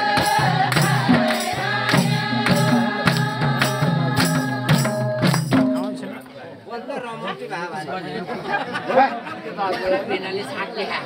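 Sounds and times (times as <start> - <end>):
people talking over one another: 5.7 - 11.0.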